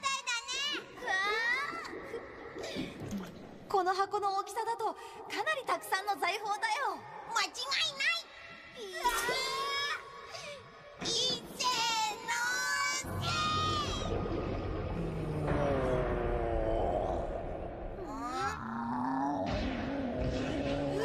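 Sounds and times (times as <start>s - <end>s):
deep rumbling roar: 13.1s - 21.0s.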